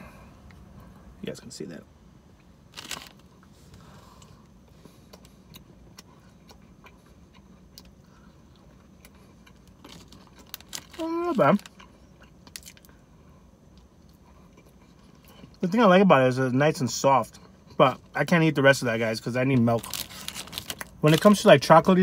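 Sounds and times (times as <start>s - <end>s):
chewing cookie: 4.1s - 13.0s, 13.6s - 15.6s.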